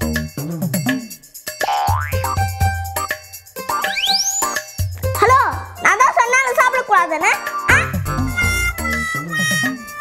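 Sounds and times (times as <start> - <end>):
upbeat comedy music: 0.0 - 10.0.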